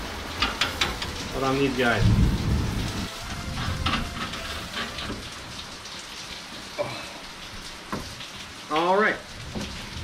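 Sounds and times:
steady rain falling: 0.0 - 10.0
low rumble of thunder: 1.8 - 5.2.

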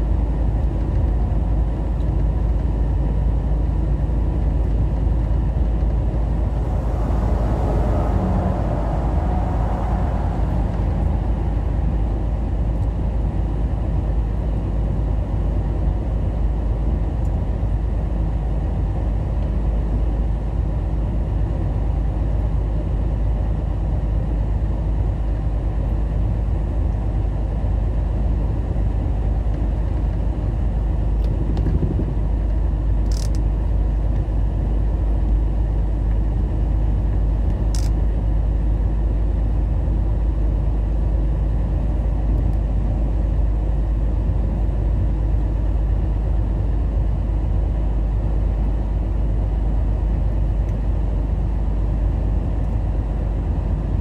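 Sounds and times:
truck engine and tyres rumbling: 0.0 - 54.0.

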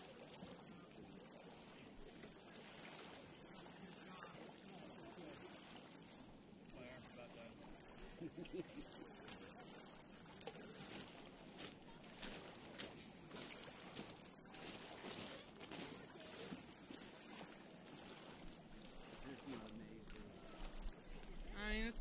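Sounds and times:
faint distant voices: 0.0 - 22.0
small waves lapping on cobbles: 0.0 - 22.0.

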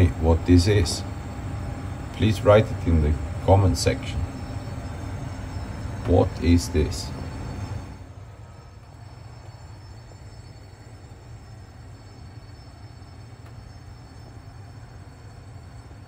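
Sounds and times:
oven fan humming: 0.0 - 16.0.

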